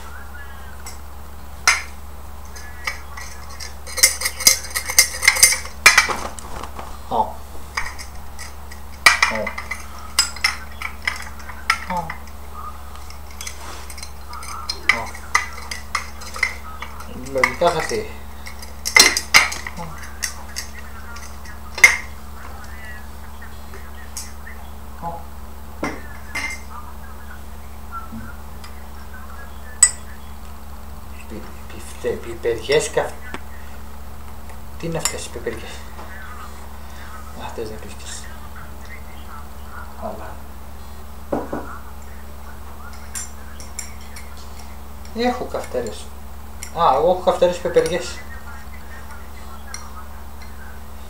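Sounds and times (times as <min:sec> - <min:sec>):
steady low hum: 0:00.0 - 0:51.0
kitchenware clinking: 0:01.6 - 0:06.6, 0:07.7 - 0:12.4, 0:13.0 - 0:22.2, 0:25.8 - 0:26.7, 0:42.9 - 0:46.0
glass jar clinking: 0:02.8 - 0:06.2.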